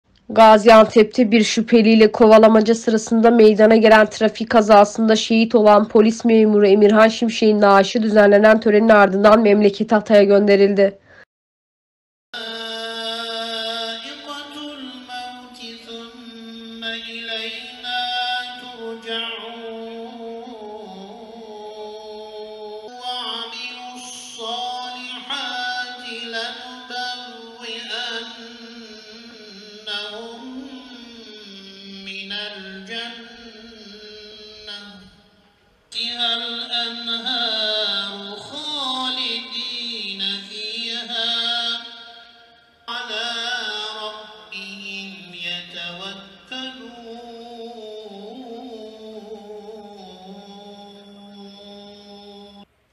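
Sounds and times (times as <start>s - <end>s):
person chanting: 12.4s - 52.7s.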